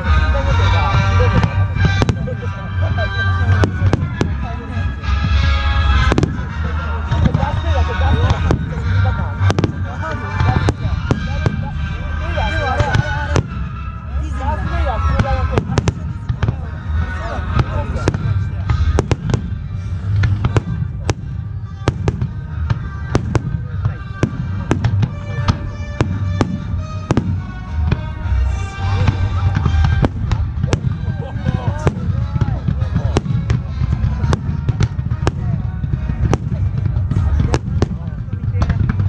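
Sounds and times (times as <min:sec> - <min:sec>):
fireworks bangs: 0:00.0 - 0:39.0.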